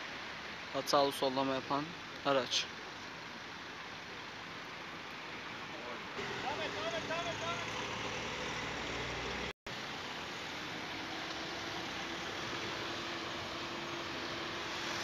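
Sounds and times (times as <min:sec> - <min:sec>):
cars passing slowly: 0:00.0 - 0:15.0
steady engine hum: 0:03.2 - 0:15.0.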